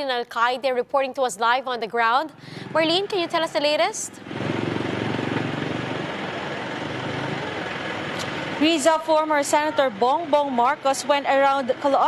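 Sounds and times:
vehicle engine idling: 4.2s - 11.2s.

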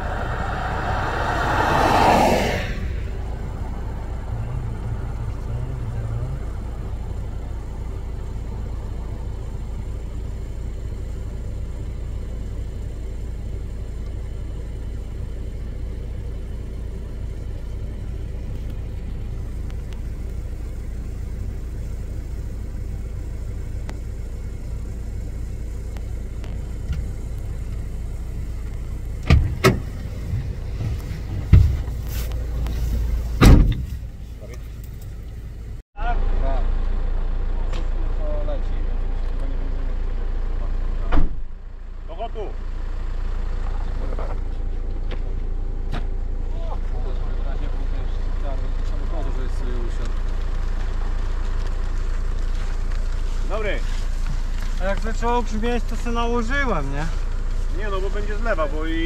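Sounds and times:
car engine running: 0.0s - 59.0s.

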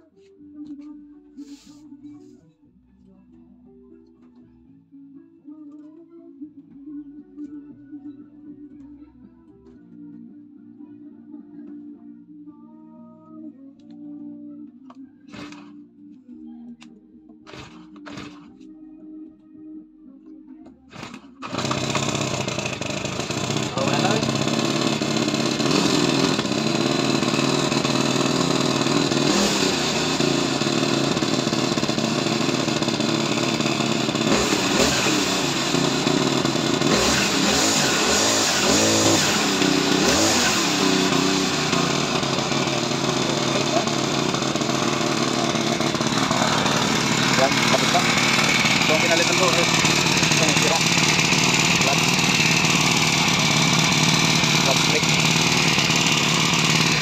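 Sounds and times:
brush cutter engine running: 15.3s - 15.8s, 17.4s - 18.6s, 20.9s - 57.0s.

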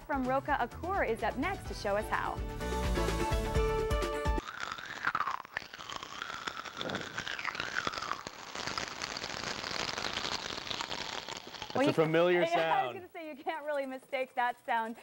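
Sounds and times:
music: 0.0s - 4.4s
popping candy crackling: 4.4s - 13.0s.

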